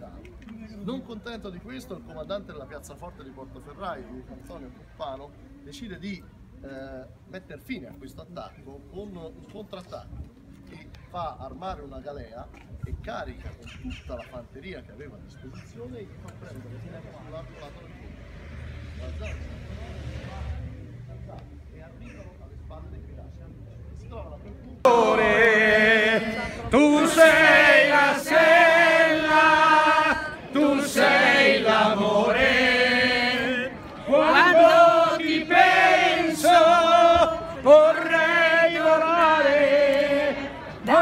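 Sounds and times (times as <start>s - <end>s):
faint voices talking: 12.4s - 38.1s
group singing unaccompanied: 24.8s - 41.0s.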